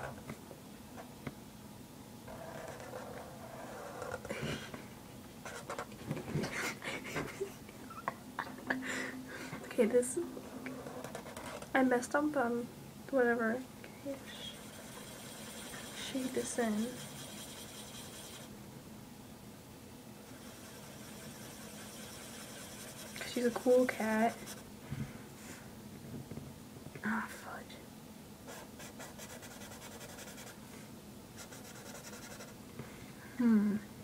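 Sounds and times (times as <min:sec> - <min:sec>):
marker scratching on paper: 0:14.3 - 0:18.5, 0:20.3 - 0:24.6, 0:28.5 - 0:30.6, 0:31.4 - 0:32.5.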